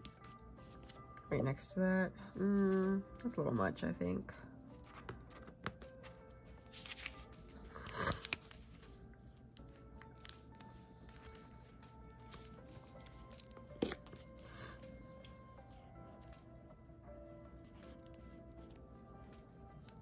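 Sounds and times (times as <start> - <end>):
faint background music: 0.0 - 20.0
papery tearing rustles: 6.7 - 8.9.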